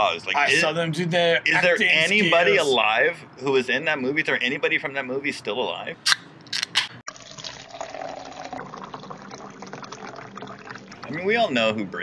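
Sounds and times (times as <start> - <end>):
liquid being poured: 7.1 - 11.3.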